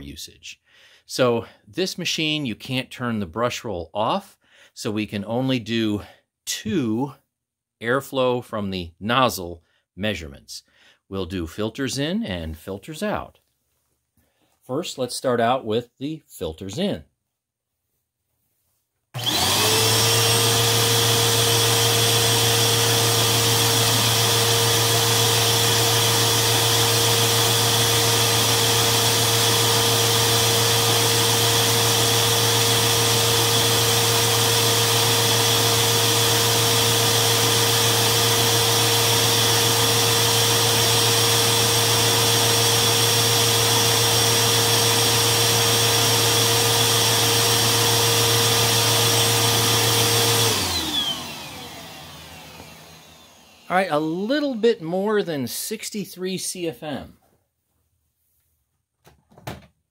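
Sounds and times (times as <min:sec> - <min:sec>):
vacuum cleaner motor whine: 0:19.2 - 0:54.6.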